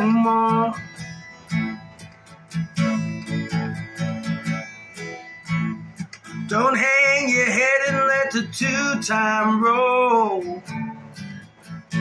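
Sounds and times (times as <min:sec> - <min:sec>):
acoustic guitar strummed: 0:00.0 - 0:12.0.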